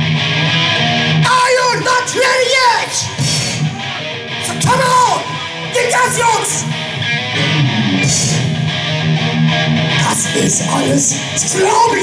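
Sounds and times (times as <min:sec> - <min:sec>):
drums: 0:00.0 - 0:12.0
electric guitar riff: 0:00.0 - 0:12.0.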